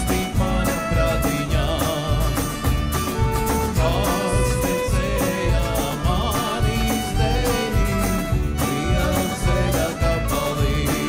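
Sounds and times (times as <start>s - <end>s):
steady drum beat: 0.0s - 11.0s
strummed acoustic guitar: 0.0s - 11.0s
violin melody: 0.0s - 11.0s.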